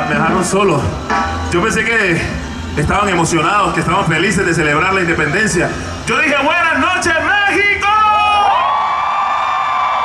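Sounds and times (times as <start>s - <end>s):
crowd cheering: 6.1s - 10.0s.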